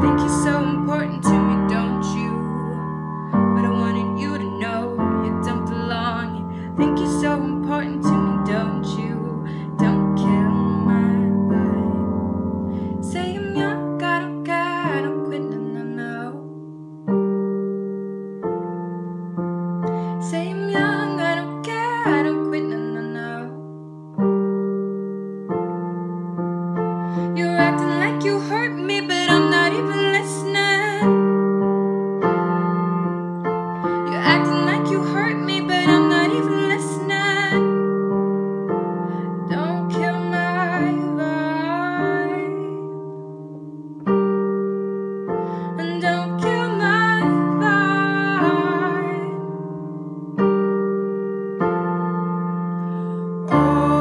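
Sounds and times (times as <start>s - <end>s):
woman singing: 0.0s - 16.6s, 19.9s - 23.7s, 27.2s - 31.5s, 33.7s - 38.0s, 38.7s - 43.0s, 45.6s - 49.8s, 53.1s - 54.0s
held chords accompaniment: 0.0s - 54.0s.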